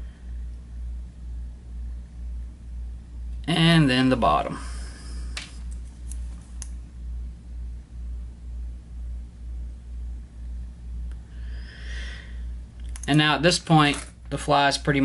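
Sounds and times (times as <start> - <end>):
pulsing low hum: 0.0 - 3.4, 4.5 - 13.0.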